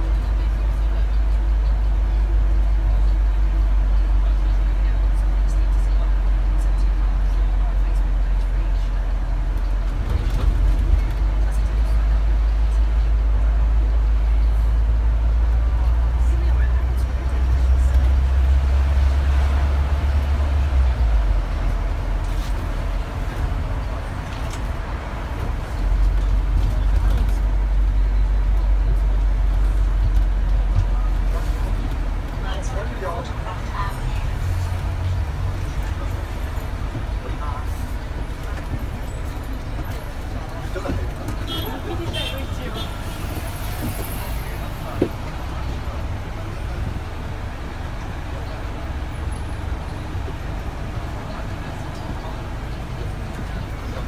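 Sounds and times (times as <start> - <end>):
bus engine and road rumble: 0.0 - 54.0
city traffic: 0.0 - 54.0.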